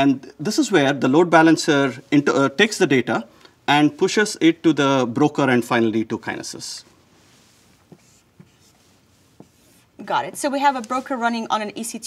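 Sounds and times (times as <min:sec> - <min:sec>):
marker scratching on board: 0:07.8 - 0:11.2.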